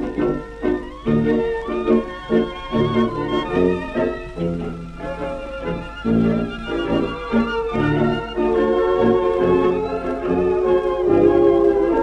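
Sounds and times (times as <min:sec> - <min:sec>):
orchestra playing a tango: 0:00.0 - 0:12.0.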